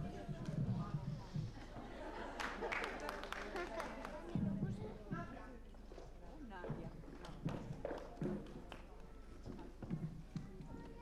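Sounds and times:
shoes tapping on stage floor: 0:00.0 - 0:02.0, 0:04.2 - 0:11.0.

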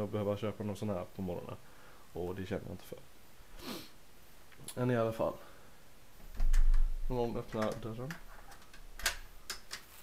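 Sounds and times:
door handle and latch clicking: 0:07.5 - 0:09.8.

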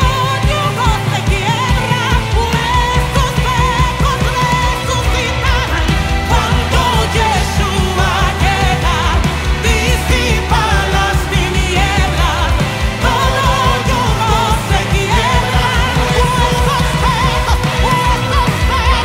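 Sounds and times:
band playing: 0:00.0 - 0:19.0
woman singing with vibrato: 0:00.0 - 0:19.0.

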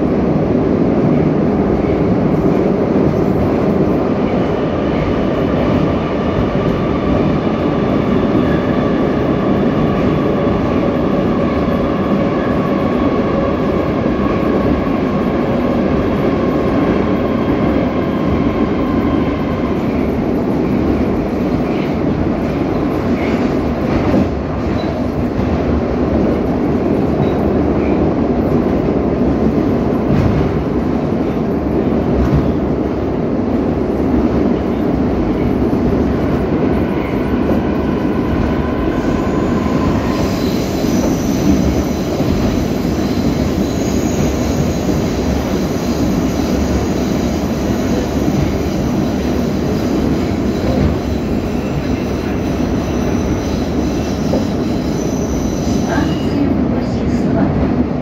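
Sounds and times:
metro train rumbling through tunnel: 0:00.0 - 0:58.0.

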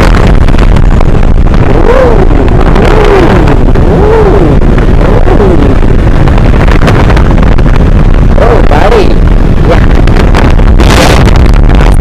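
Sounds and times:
motorcycle engine running: 0:00.0 - 0:12.0
wind rush on microphone: 0:00.0 - 0:12.0.

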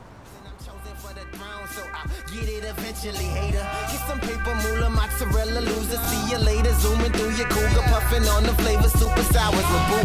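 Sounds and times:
rapper's voice: 0:00.2 - 0:10.0
hip hop bass beat: 0:00.3 - 0:10.0.

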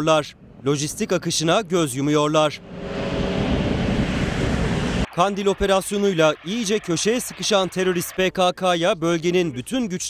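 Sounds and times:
wind blowing across microphone: 0:00.0 - 0:06.4.

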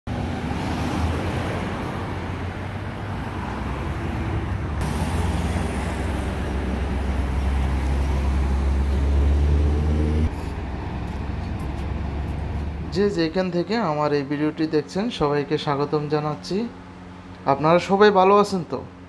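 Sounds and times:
heavy truck engine rumbling: 0:00.1 - 0:14.6
cars and trucks passing: 0:00.1 - 0:14.7, 0:15.4 - 0:17.9.

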